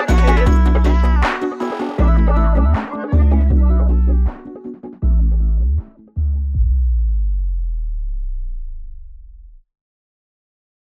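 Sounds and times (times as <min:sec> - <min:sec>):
deep electronic bass note: 0:02.0 - 0:04.4, 0:05.0 - 0:09.6.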